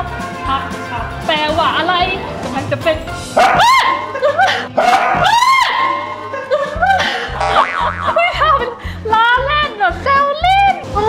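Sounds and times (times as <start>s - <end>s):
background music: 0.0s - 11.0s
dog barking: 3.4s - 4.1s, 4.8s - 6.1s.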